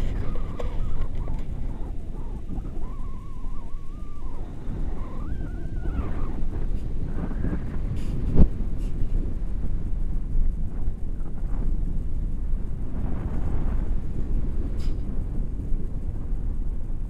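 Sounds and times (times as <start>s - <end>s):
wavering high tone: 0.0s - 6.6s
wind buffeting microphone: 0.0s - 17.0s.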